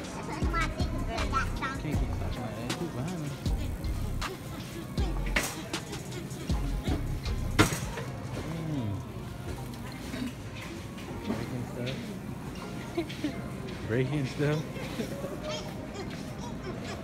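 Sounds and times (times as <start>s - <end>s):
background music: 0.0s - 17.0s
faint voices: 0.0s - 17.0s
shopping cart rolling and rattling: 7.6s - 17.0s.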